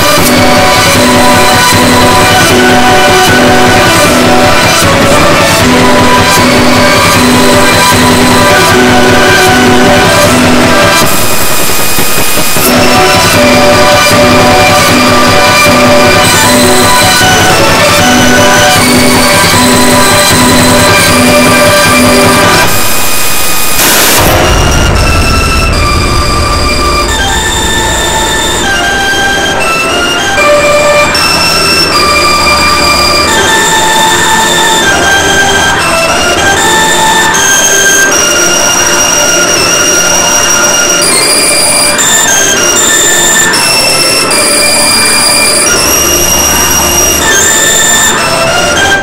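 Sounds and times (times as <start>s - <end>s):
dense piano notes roaring: 0.0s - 49.0s
sustained high chord tones: 0.0s - 49.0s.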